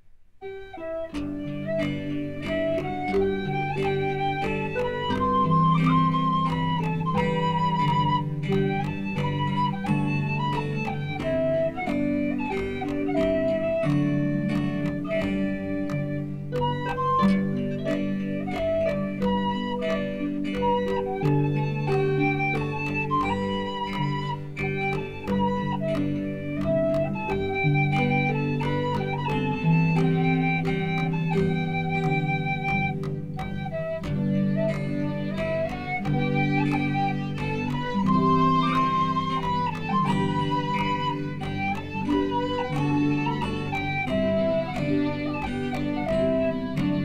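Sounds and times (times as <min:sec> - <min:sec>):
strummed guitar chords: 0:00.4 - 0:47.0
whistle playing ornamented melody: 0:00.4 - 0:47.0.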